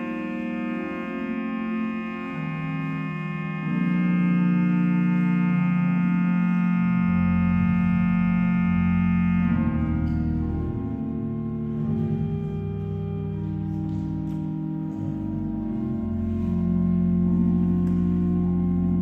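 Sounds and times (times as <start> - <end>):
organ playing sustained chords: 0.0 - 19.0.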